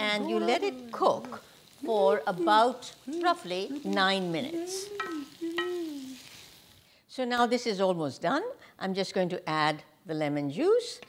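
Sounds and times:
vegetables sizzling in oil: 0:00.0 - 0:07.6
person humming: 0:03.1 - 0:06.3.

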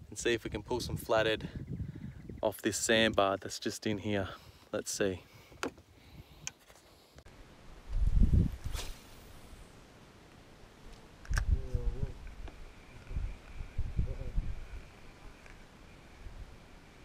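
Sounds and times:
wind buffeting microphone: 0:00.0 - 0:02.4, 0:07.9 - 0:08.8, 0:11.3 - 0:14.9
camera handling noise: 0:11.2 - 0:11.6.

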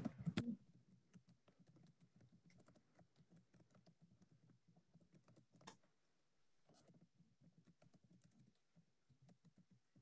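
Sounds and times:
keyboard typing: 0:00.0 - 0:05.9, 0:06.7 - 0:10.0.

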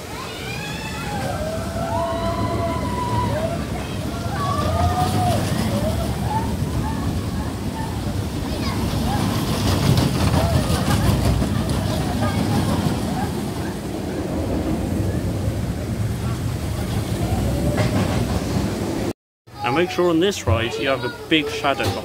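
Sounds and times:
roller coaster rumbling on track: 0:00.0 - 0:22.0
clickety-clack rattle: 0:09.0 - 0:13.4.

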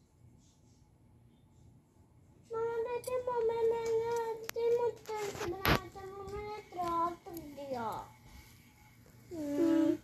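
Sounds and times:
young child singing wordless notes: 0:02.5 - 0:08.0.

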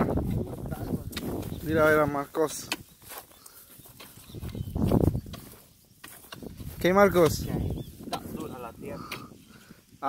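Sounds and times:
digging bar scraping ground: 0:03.9 - 0:07.4.

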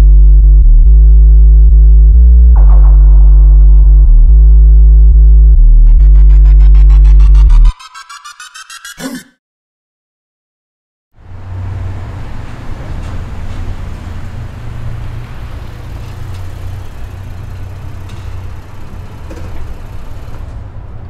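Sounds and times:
car engine idling: 0:11.3 - 0:21.0.

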